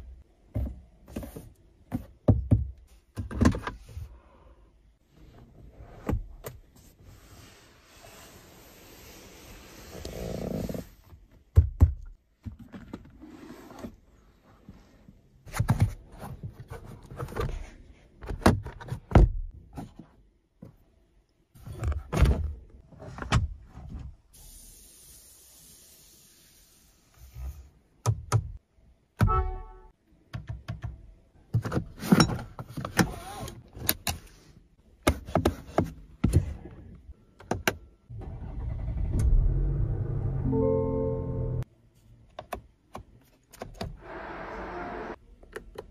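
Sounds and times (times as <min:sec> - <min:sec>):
car engine rumbling: 0:38.1 - 0:41.6.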